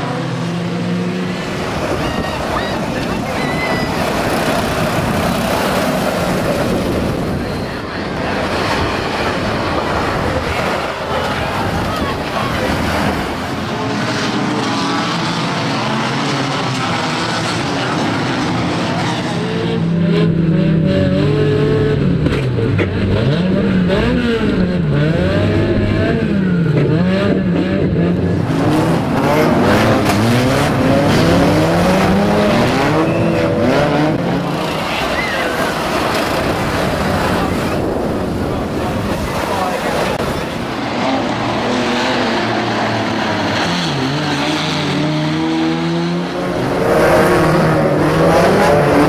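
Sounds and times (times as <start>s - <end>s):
racing car engines revving: 0.0s - 49.0s.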